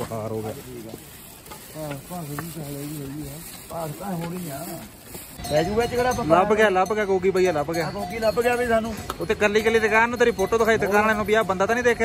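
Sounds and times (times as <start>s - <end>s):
man talking: 0.0s - 1.0s, 1.7s - 12.0s.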